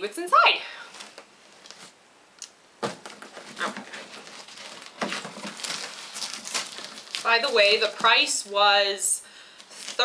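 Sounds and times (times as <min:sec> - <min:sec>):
plastic wrapping crinkling: 0:00.9 - 0:02.0, 0:02.8 - 0:10.0.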